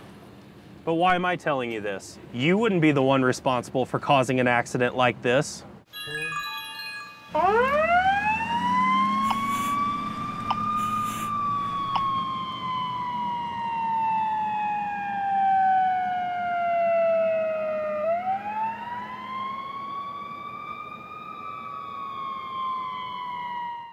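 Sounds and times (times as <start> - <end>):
emergency siren wailing: 7.3 - 23.9.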